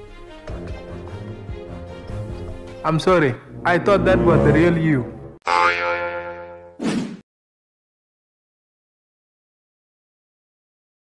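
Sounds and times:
comedic pitched tone: 3.5 - 6.7.

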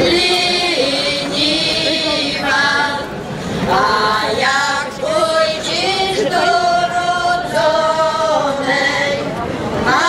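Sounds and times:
women singing in harmony: 0.0 - 10.0.

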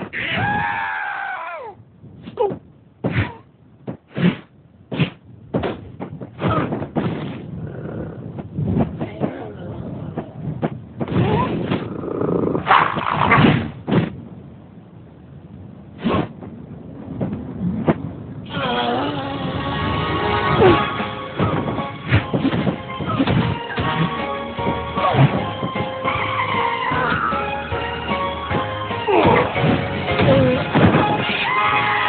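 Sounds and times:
cartoon animal vocal sounds: 18.5 - 20.0
background music: 19.0 - 32.0.

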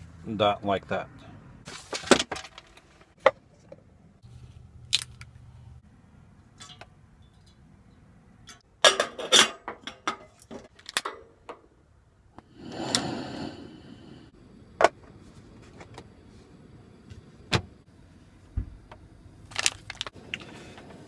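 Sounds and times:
gas burner lighting rush: 12.4 - 14.8.

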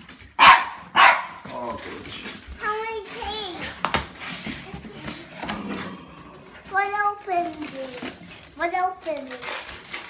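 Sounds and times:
child speaking: 2.5 - 3.8, 4.5 - 5.8, 6.6 - 9.6.

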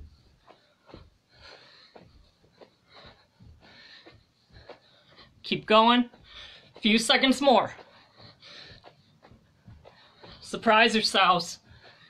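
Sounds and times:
person breathing heavily: 0.0 - 10.6, 11.6 - 12.0
feet thudding on carpet: 0.0 - 12.0.

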